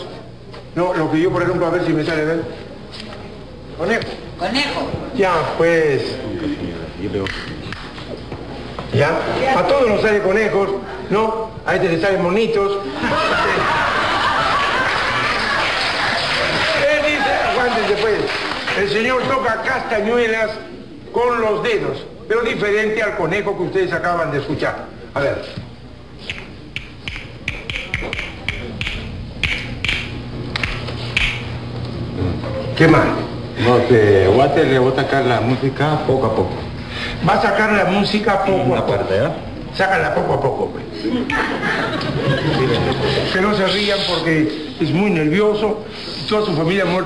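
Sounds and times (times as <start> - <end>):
low steady hum: 18.2 - 47.0
hand clicking taps: 26.2 - 31.5
murmuring voices: 40.3 - 44.8.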